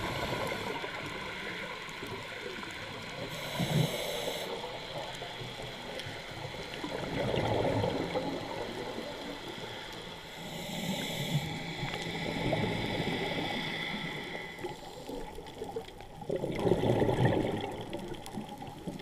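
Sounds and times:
regulator hiss: 0:03.2 - 0:06.3, 0:09.5 - 0:15.1
gurgling exhaust bubbles: 0:06.8 - 0:09.1, 0:15.6 - 0:19.0.

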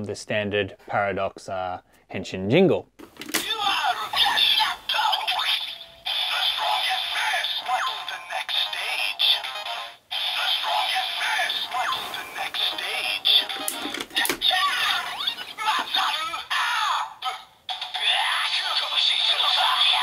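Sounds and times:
recorded voice calling: 0:03.3 - 0:20.0.

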